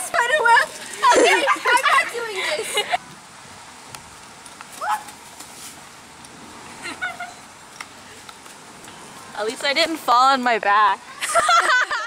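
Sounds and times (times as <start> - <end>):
low outdoor hiss: 0.0 - 12.0.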